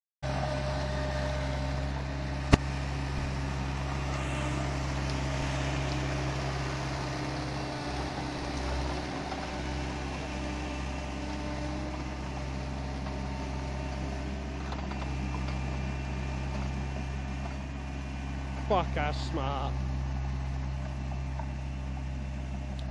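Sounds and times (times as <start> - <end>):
tracked machine engine running: 0.2 - 22.9.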